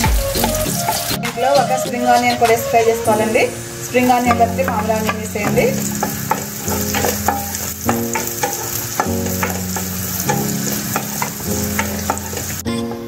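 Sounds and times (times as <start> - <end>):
onions sizzling in hot oil: 0.0 - 13.0
spatula tapping and scraping pan: 0.4 - 2.6, 4.0 - 13.0.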